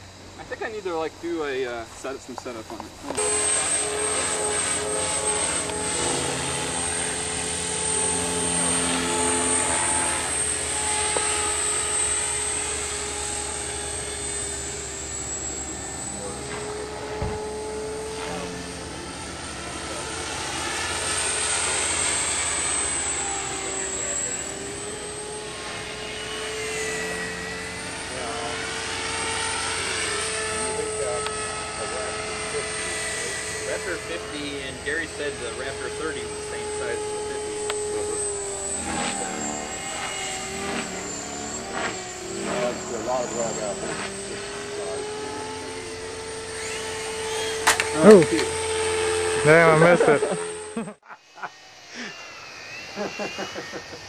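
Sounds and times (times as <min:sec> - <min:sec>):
model helicopter motor whine: 0:00.0 - 0:54.0.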